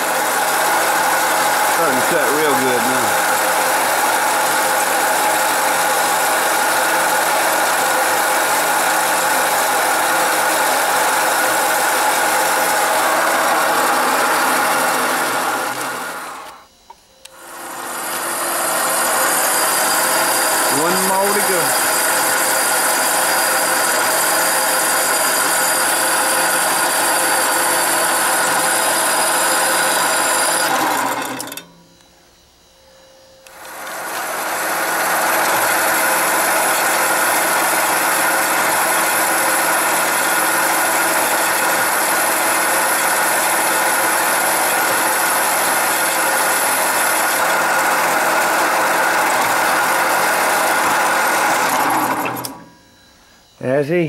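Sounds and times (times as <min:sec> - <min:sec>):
band saw cutting steel: 0:00.0 - 0:16.6, 0:17.3 - 0:31.6, 0:33.5 - 0:52.7.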